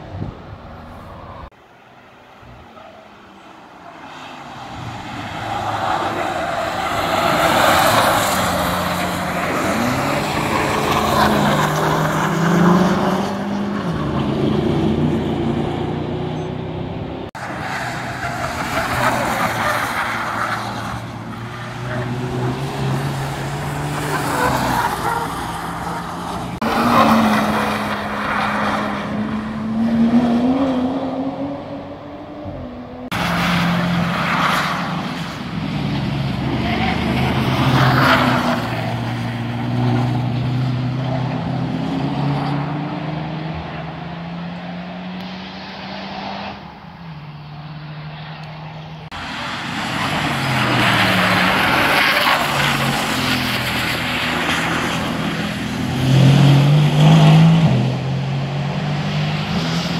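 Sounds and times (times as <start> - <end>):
car engines passing: 0.0 - 59.9.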